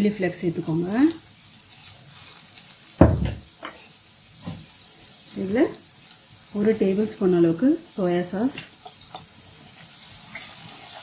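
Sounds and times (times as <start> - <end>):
onions frying in a pan: 0.0 - 11.0
heavy thump: 3.0 - 3.5.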